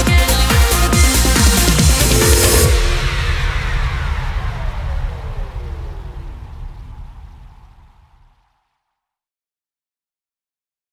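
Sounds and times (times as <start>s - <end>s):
low drone: 0.0s - 8.4s
synthesized sweep falling in pitch: 0.6s - 8.2s.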